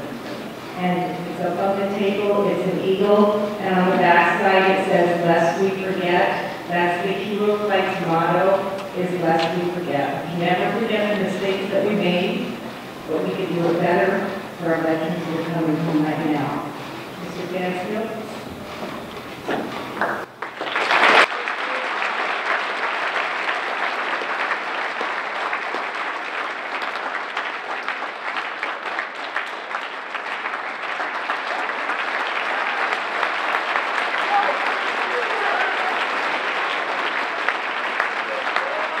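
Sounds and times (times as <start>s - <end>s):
audience applauding: 19.6s - 39.0s.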